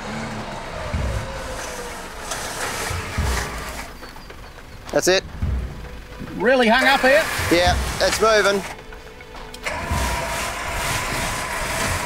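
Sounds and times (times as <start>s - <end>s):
low thumps: 0.0s - 9.1s
engine running: 0.0s - 12.0s
winch whine: 0.0s - 12.0s.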